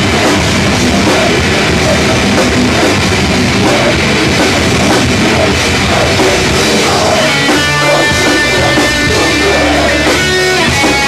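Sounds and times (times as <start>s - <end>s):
drum kit: 0.0s - 11.0s
live heavy rock band: 0.0s - 11.0s.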